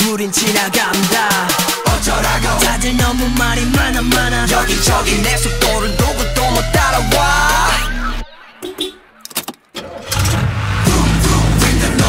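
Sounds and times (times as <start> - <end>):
pop music beat: 0.0 - 9.0, 10.8 - 12.0
clicks: 8.6 - 9.8
car engine starting and revving: 9.8 - 12.0.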